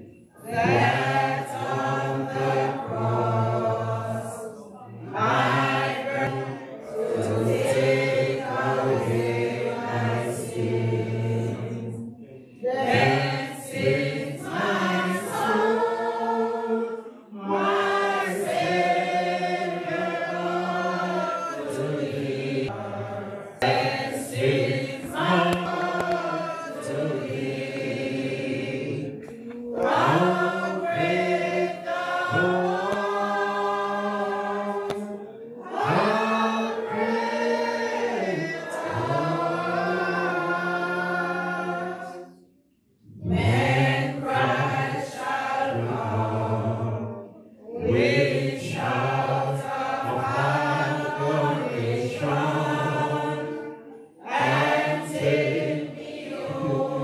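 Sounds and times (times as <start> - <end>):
congregation singing a hymn: 0.0 - 57.0.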